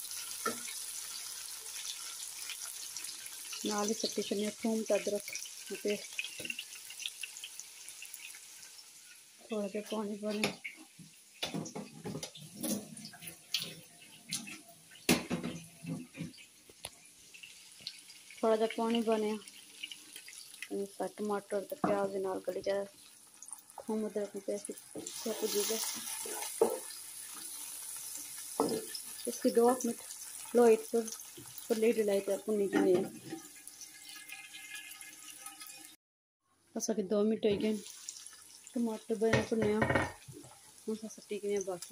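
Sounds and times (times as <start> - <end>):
oil crackling and popping: 0.0 - 15.3, 15.9 - 36.0, 37.7 - 41.9
vegetables sizzling in hot oil: 0.0 - 36.0, 37.6 - 41.9.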